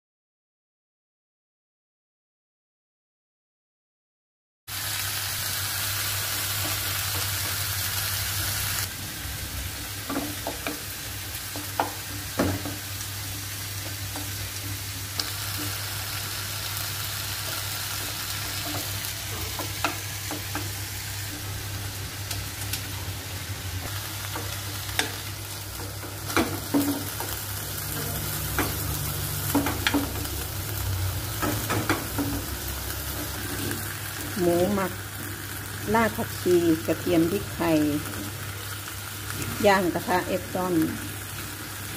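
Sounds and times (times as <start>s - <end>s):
food sizzling: 4.7s - 41.9s
low hum: 8.9s - 11.3s.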